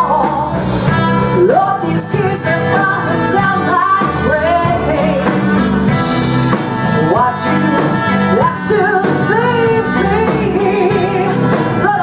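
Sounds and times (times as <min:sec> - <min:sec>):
live blues band playing: 0:00.0 - 0:12.0
woman singing lead: 0:00.0 - 0:12.0.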